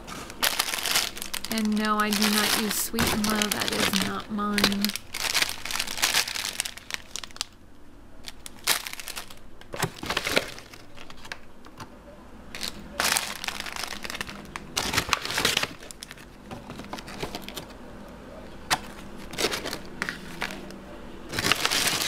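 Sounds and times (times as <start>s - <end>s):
plastic packaging crinkling: 0.0s - 7.6s, 8.2s - 11.5s, 12.6s - 17.8s, 18.7s - 20.7s, 21.3s - 22.0s.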